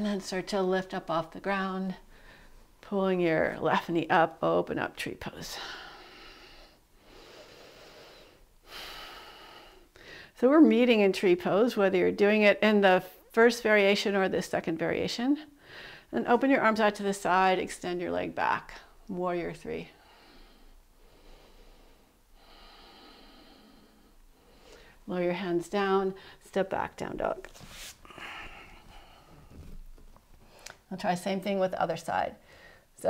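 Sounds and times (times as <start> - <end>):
woman breathing slowly: 2.0 - 2.8, 5.5 - 10.4, 15.5 - 16.1, 19.9 - 25.1, 26.2 - 26.4, 27.7 - 30.9, 32.4 - 33.0.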